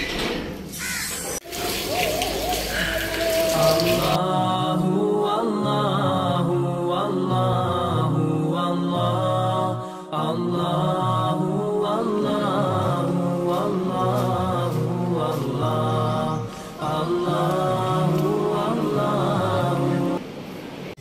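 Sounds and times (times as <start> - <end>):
person singing slow chant: 1.9 - 20.2.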